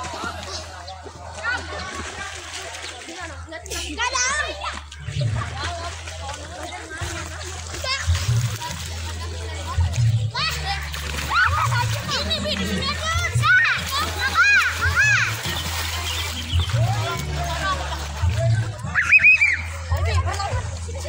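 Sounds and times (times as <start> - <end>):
water splashing: 0.0 - 21.0
children shouting: 10.4 - 18.1, 18.8 - 20.5.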